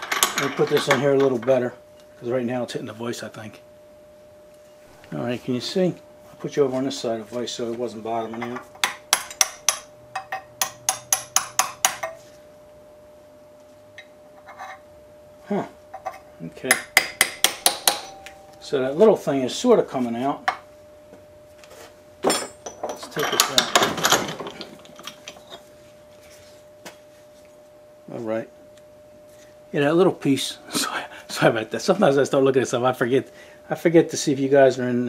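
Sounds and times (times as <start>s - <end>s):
faint high hum: 0.0s - 35.0s
hammer striking steel punch: 8.8s - 12.2s, 16.7s - 18.8s.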